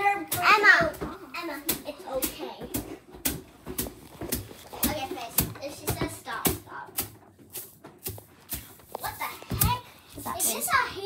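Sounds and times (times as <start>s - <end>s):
children chattering: 9.0s - 11.0s.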